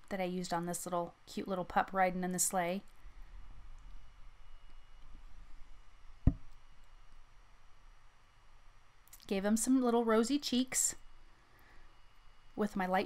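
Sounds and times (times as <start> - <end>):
faint low hum: 0.0 - 13.0
short dull knock: 6.2 - 6.5.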